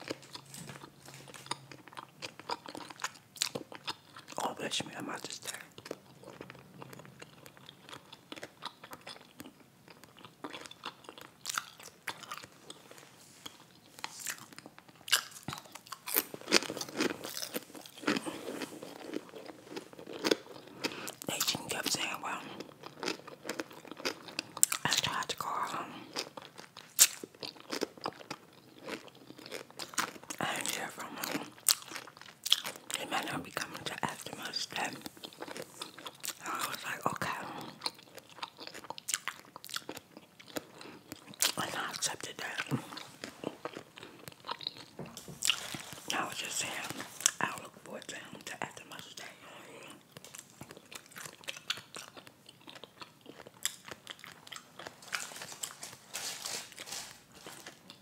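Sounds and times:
crunchy chewing: 0.0 - 58.0.

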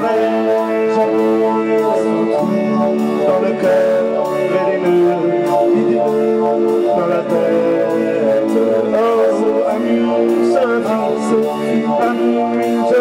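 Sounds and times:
drum beat: 0.0 - 13.0
electric guitar: 0.0 - 13.0
keyboard chords: 0.0 - 13.0
person singing: 0.0 - 13.0.

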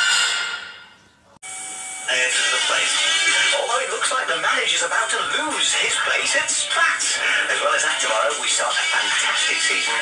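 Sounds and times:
background music: 1.9 - 10.0.

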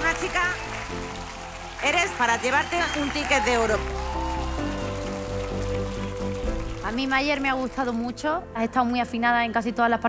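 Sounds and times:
audience applause: 0.0 - 8.0
background music chords: 0.0 - 10.0.

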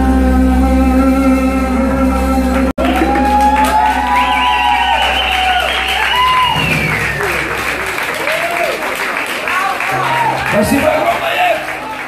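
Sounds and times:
applause: 2.8 - 12.0
audience cheering: 2.8 - 12.0
band chord ringing: 4.7 - 8.7.

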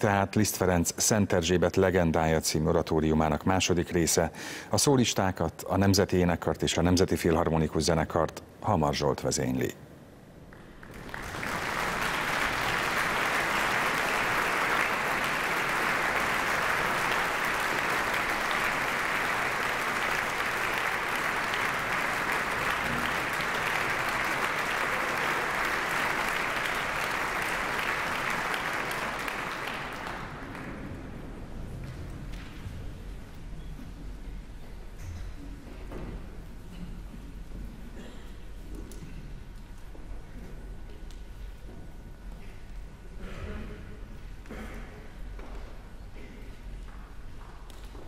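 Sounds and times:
audience applauding: 10.5 - 31.6.

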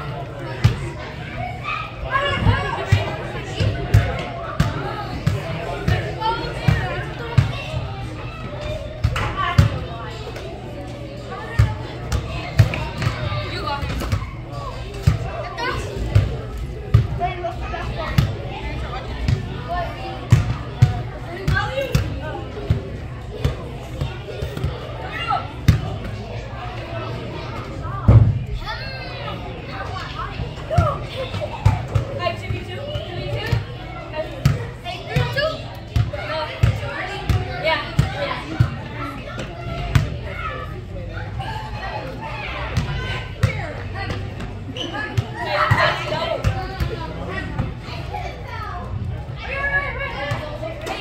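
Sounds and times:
children shouting: 0.0 - 10.2, 23.2 - 51.0
spectators' voices: 0.0 - 51.0
children shouting indoors: 0.8 - 2.9.

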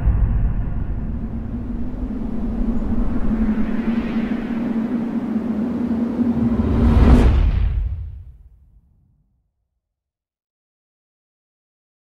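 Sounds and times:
steady low hum: 0.0 - 7.3
deep rumbling drone: 0.0 - 8.1
sharp hit: 0.0 - 8.2.

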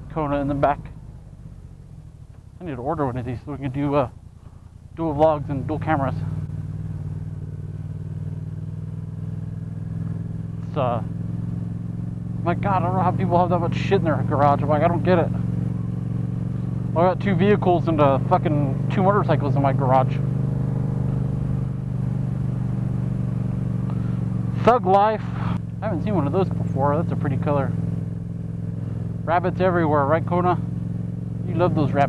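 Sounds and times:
motorcycle engine running: 0.0 - 32.0.

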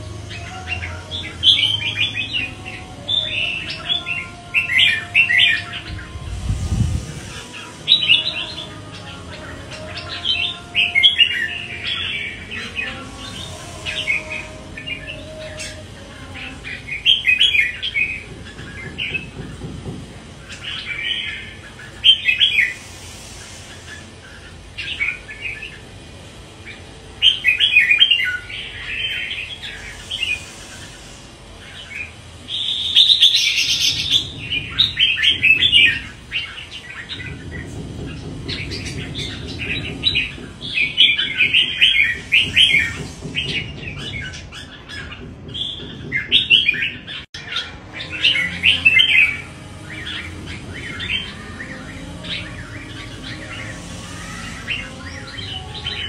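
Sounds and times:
bird singing rapid high chirps: 0.0 - 19.7, 20.3 - 56.0.

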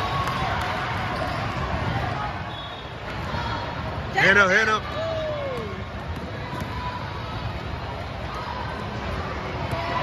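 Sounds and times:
voices in echoing hall: 0.0 - 10.0.

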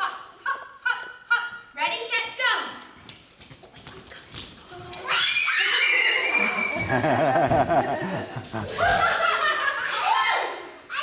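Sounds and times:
children's footsteps on hard floor: 2.8 - 9.3.

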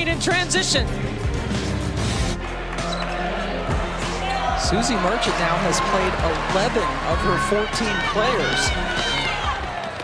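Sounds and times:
music: 0.0 - 10.0
arena crowd noise: 1.7 - 10.0.

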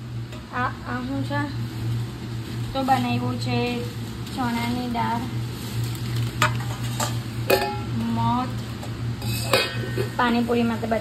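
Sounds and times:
steady low hum: 0.0 - 11.0
spoon clinking against metal bowl: 7.0 - 7.9, 9.2 - 10.0.

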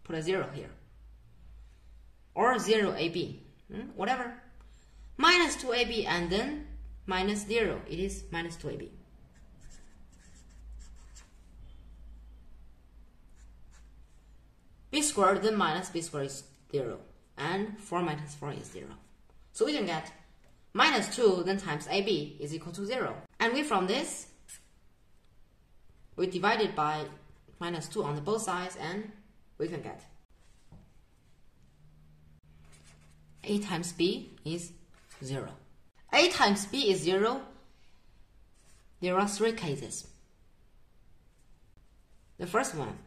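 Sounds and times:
felt-tip marker writing on paper: 9.3 - 11.3.

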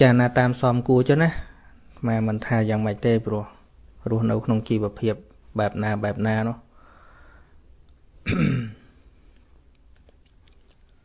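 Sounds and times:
man clearing his throat: 8.2 - 9.0.

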